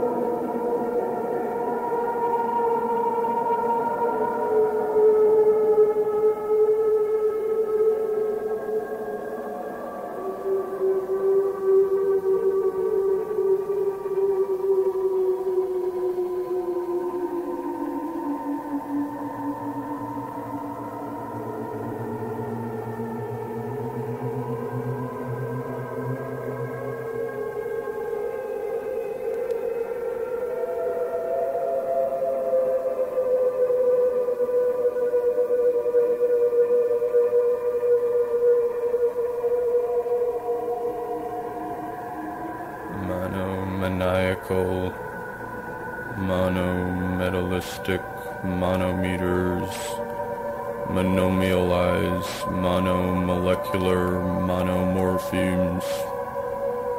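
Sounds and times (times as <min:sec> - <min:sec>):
drone music sustained tones: 0:00.0 - 0:56.9
low hum: 0:42.8 - 0:56.2.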